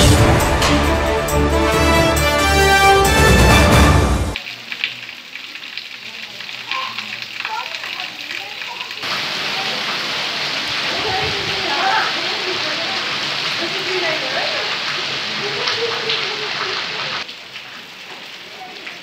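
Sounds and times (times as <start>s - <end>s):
heavy rain falling: 0.0s - 19.0s
faint voices: 5.3s - 19.0s.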